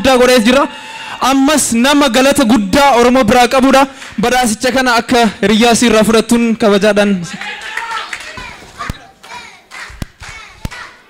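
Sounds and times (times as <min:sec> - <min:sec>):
faint voices in a hall: 0:07.2 - 0:11.0
sharp hand claps: 0:07.4 - 0:11.0.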